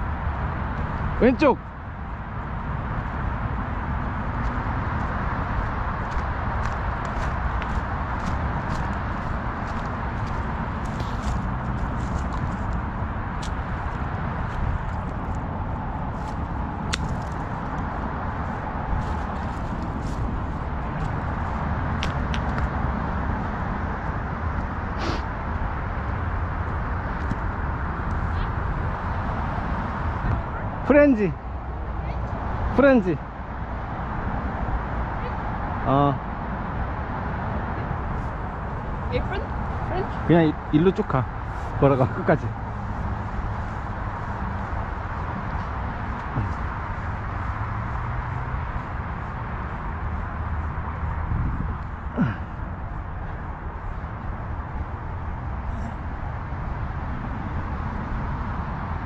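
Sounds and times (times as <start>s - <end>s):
footsteps on dry leaves: 4.4s - 15.0s, 18.4s - 21.6s
wind on microphone: 42.4s - 59.0s.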